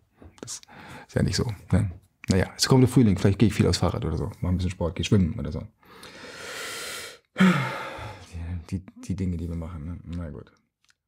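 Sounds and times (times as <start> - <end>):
man speaking: 0.4 - 5.7, 8.2 - 10.5
man sighing: 7.4 - 8.3.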